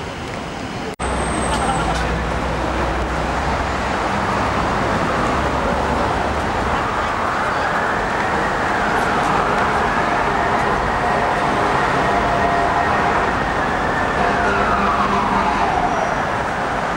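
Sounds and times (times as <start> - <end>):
street traffic: 0.0 - 16.9
emergency siren wailing: 5.0 - 16.9.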